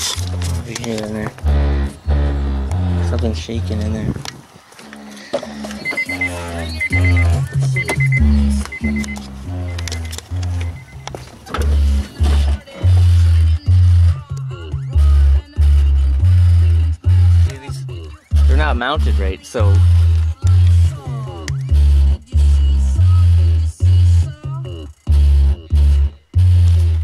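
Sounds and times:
music with heavy bass and vocals: 0.0s - 27.0s.

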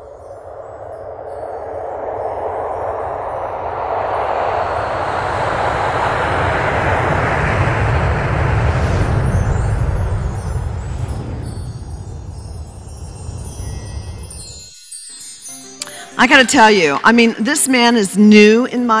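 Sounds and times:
light tinkling chimes: 0.0s - 4.9s, 8.8s - 19.0s
deep rumble: 0.0s - 14.8s
dense whoosh: 0.1s - 14.9s.

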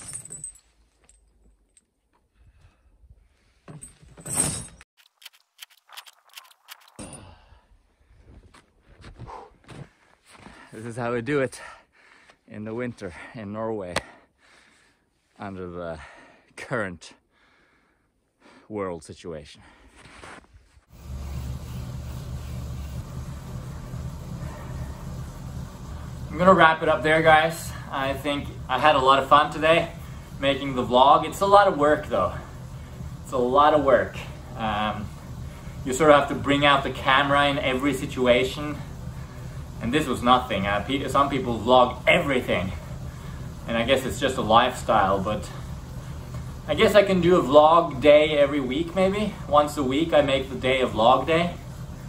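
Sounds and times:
metal chains clinking: 0.0s - 2.0s, 3.7s - 4.9s
bike trainer drone: 20.9s - 52.0s.

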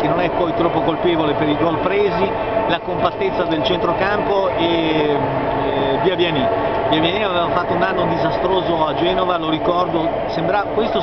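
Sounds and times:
man speaking: 0.0s - 11.0s
steady background hum: 0.0s - 11.0s.

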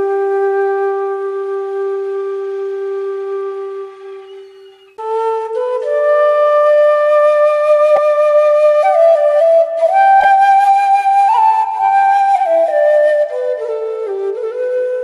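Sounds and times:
slow solo flute melody: 0.0s - 15.0s.

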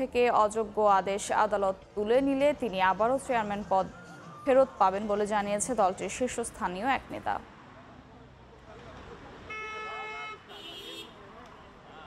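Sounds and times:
vehicle horns honking: 9.5s - 11.2s.

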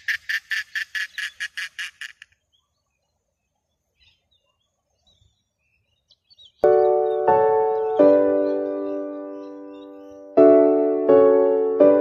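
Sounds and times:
bird rattling clicking call: 0.0s - 2.4s.

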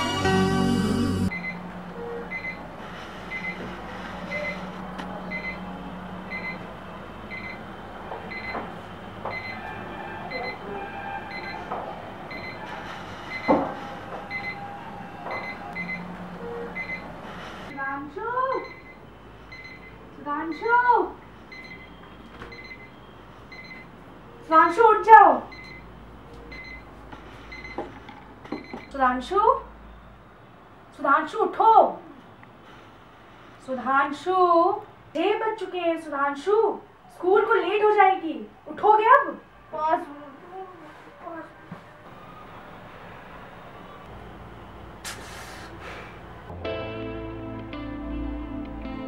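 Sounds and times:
alarm clock beeping: 10.3s - 10.6s, 11.3s - 11.7s, 12.3s - 12.6s, 13.3s - 13.6s, 14.3s - 14.6s, 15.4s - 17.1s, 18.5s - 20.7s, 21.5s - 23.9s, 25.5s - 25.9s, 26.5s - 26.9s, 27.5s - 27.8s.

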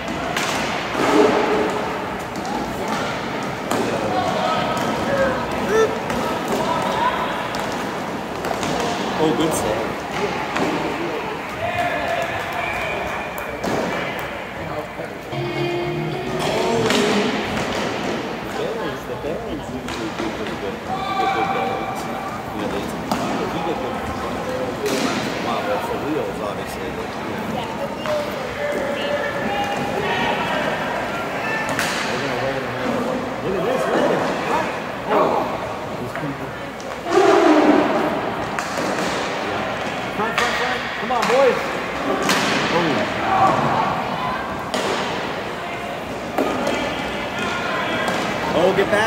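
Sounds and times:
puck and sticks hitting boards: 0.0s - 11.0s, 13.4s - 14.3s, 15.3s - 18.6s, 19.8s - 20.6s, 22.6s - 25.5s, 31.6s - 32.3s, 36.8s - 43.0s, 44.7s - 49.0s
distant shouts from players and crowd: 20.8s - 22.6s, 28.2s - 32.0s.

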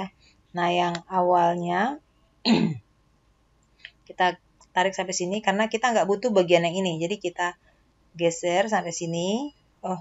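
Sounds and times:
woman clearing her throat: 2.5s - 2.9s.

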